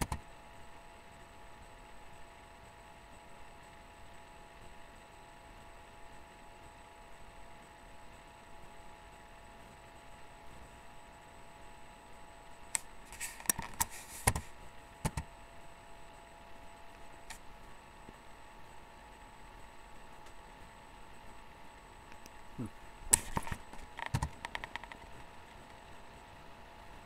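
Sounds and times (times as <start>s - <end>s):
faint electrical hum: 0.0s - 27.0s.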